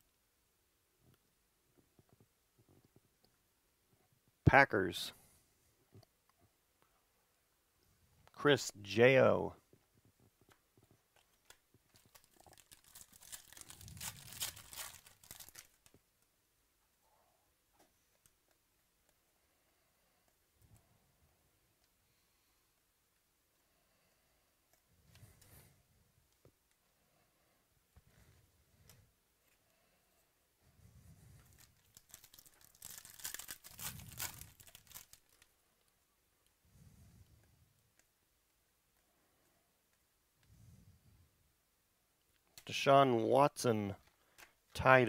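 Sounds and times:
plastic wrapper crinkling and tearing: 11.1 - 16.0, 31.4 - 35.5.

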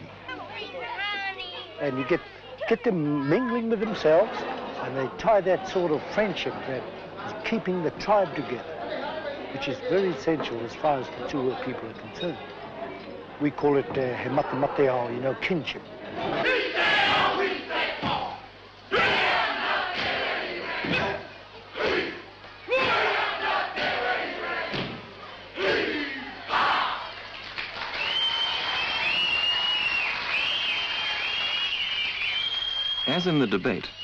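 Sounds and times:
crowd noise: 0.0 - 34.0
group shouting a chant: 16.2 - 27.1.

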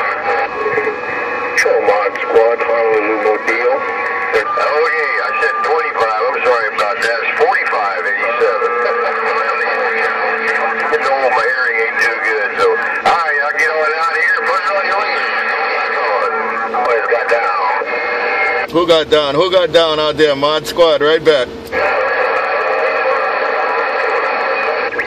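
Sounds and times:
garbled radio voices: 0.0 - 25.0
radio static hiss and crackling: 0.0 - 25.0.

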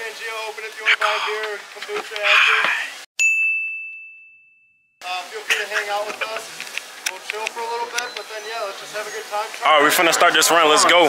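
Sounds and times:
high bell chime: 3.2 - 5.0.

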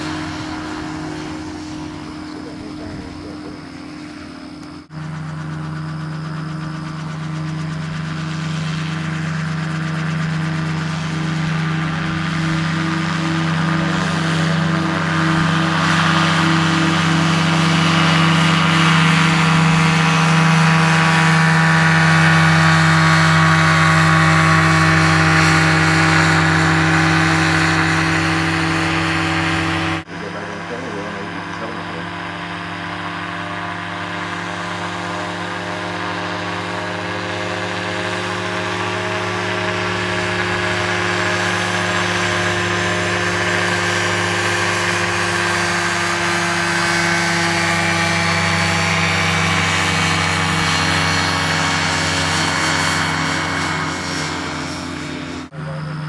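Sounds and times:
gyroplane engine and propeller: 0.0 - 56.0.

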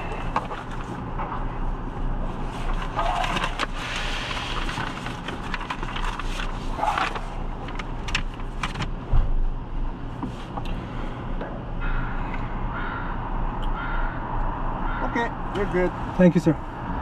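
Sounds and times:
car engine idling: 0.0 - 17.0
papers rustling: 2.3 - 9.0.

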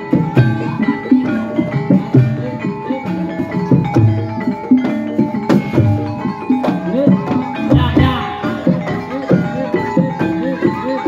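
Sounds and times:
held tone: 7.7 - 9.3.

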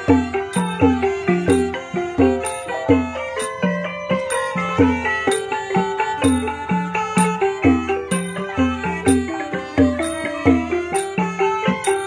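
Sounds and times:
small cymbals clinking: 0.0 - 12.0
xylophones and gongs playing melody: 0.0 - 12.0.

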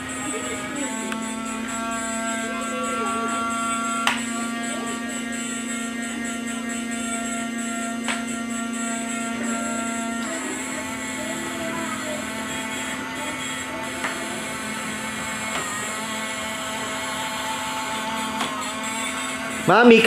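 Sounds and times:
tinny electronic tune: 0.0 - 20.0
toy motor and gears humming: 0.0 - 20.0.

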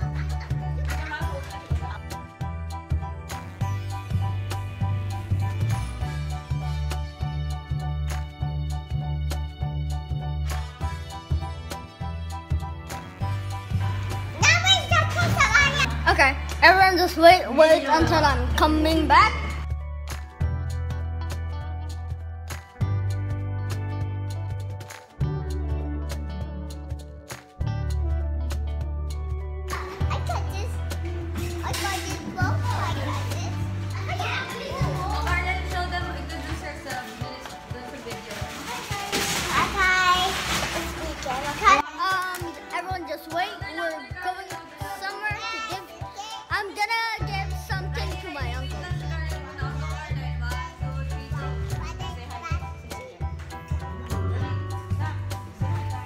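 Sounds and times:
background music: 0.0 - 56.0
children calling and chattering: 14.2 - 19.7, 29.7 - 55.8
child talking loudly: 14.4 - 19.5.

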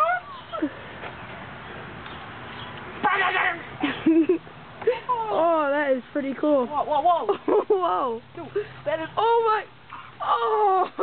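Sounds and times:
outdoor background: 0.0 - 11.0.

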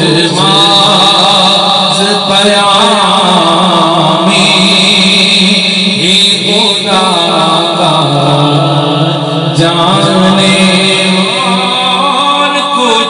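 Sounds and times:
man singing into microphone: 0.0 - 13.0.

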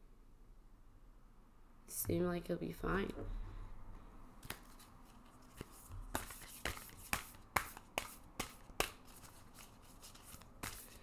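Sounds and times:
cards shuffling: 4.4 - 11.0.

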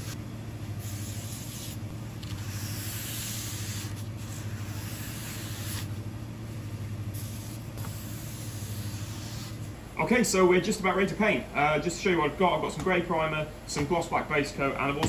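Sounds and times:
steady low hum: 0.0 - 15.0
rag wiping plastic: 0.8 - 6.0, 7.1 - 9.7.

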